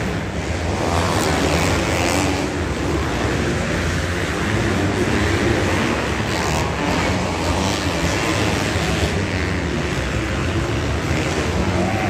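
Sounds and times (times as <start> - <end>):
dirt bike engines revving: 0.0 - 12.0.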